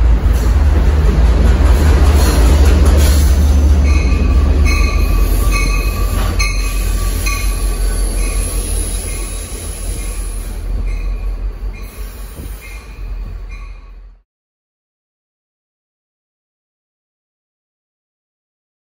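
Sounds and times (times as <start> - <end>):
train rumbling on rails: 0.0 - 14.2
high-pitched wheel squeals: 3.8 - 14.0.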